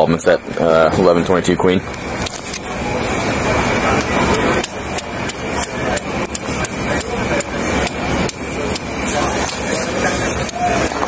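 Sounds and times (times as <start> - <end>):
steady noisy background: 0.0 - 11.0
rapid sharp thumps: 1.8 - 11.0.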